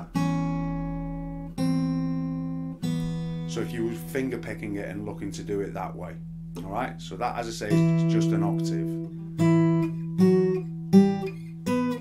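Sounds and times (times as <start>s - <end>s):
acoustic guitar chords ringing: 0.0s - 12.0s.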